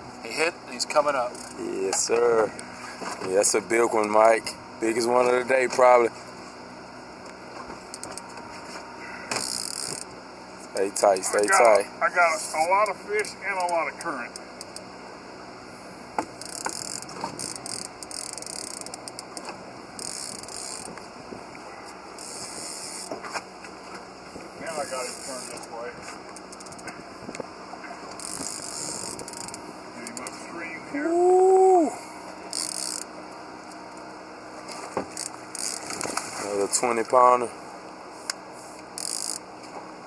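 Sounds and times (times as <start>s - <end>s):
fishing reel clicking: 9.4s - 10.1s, 16.4s - 19.2s, 20.0s - 20.9s, 25.0s - 25.8s, 28.2s - 30.3s, 32.5s - 33.1s, 35.2s - 36.0s, 39.0s - 39.4s.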